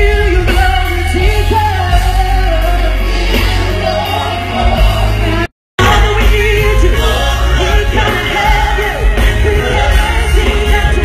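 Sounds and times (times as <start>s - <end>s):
bass-heavy accompaniment: 0.0s - 11.0s.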